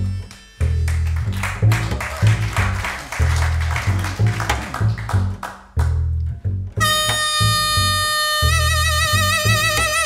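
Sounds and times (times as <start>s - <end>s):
double bass plucking low notes: 0.0s - 10.0s.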